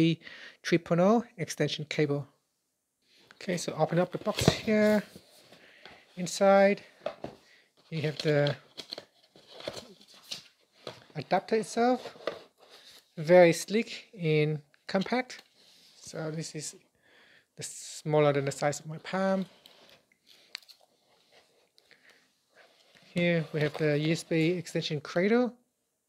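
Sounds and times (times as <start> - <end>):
paper card and plastic tray handling: 3.5 - 6.4, 7.0 - 13.2, 18.4 - 24.8.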